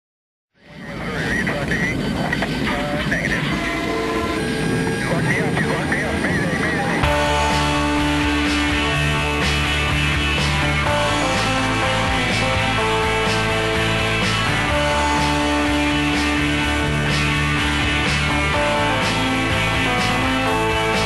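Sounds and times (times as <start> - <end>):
noisy intro with voices: 0.6 - 7.7
garage rock band playing: 6.9 - 21.0.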